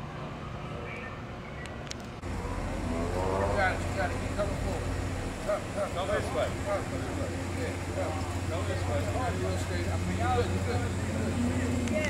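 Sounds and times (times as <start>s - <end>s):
steady low hum: 0.0s - 12.0s
people talking indistinctly: 2.2s - 12.0s.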